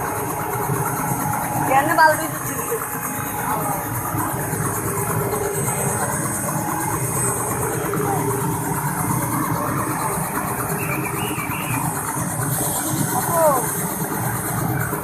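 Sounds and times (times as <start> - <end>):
helicopter engine idling: 0.0 - 15.0.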